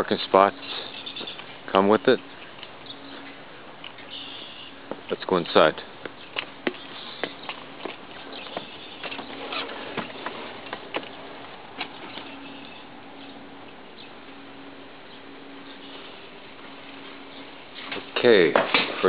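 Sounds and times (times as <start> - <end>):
footsteps on stone steps: 6.0 - 11.2
front door opening: 6.2 - 13.4.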